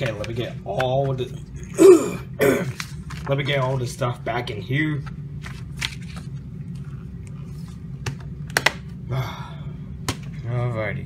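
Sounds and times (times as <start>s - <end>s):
paper rustling: 2.7s - 4.0s, 5.4s - 7.9s.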